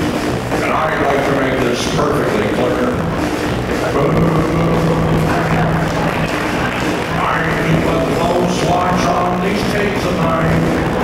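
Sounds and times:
live band playing amplified music: 0.0 - 11.0
electric guitar: 2.7 - 11.0.

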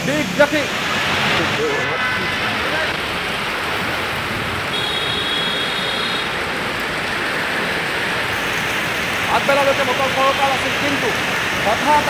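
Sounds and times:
heavy rain falling: 0.0 - 12.0.

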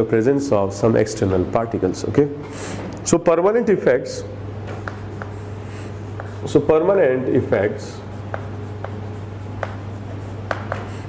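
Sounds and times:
sharp chalk ticks: 4.8 - 5.4, 6.1 - 6.5, 8.1 - 11.0
chalk scratching on chalkboard: 4.8 - 11.0.

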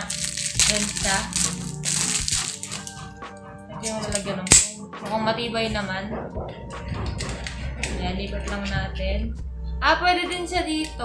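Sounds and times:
sharp clamp click: 3.9 - 4.8.

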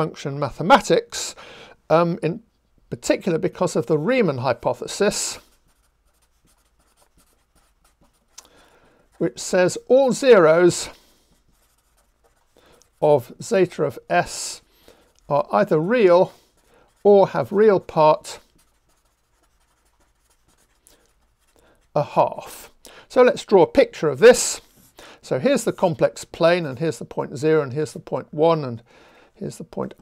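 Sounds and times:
marker writing on paper: 5.0 - 8.4, 9.1 - 13.4, 14.2 - 22.0.

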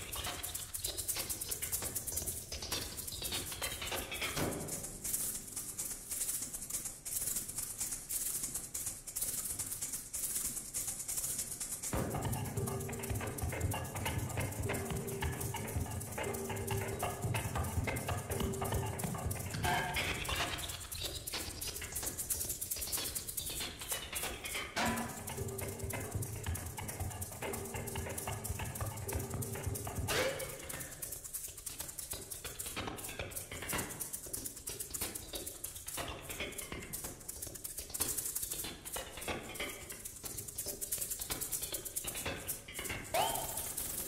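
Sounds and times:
rapid percussion tapping: 0.0 - 44.0
shaker played in rhythm: 0.0 - 44.0.

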